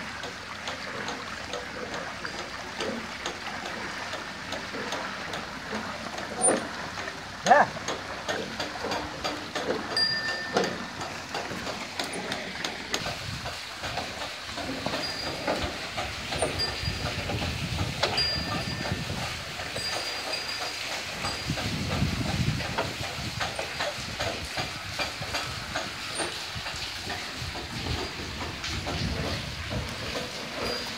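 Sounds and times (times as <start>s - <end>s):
water spilling hiss: 0.0s - 30.9s
wooden wheel gearing clacking: 0.0s - 30.9s.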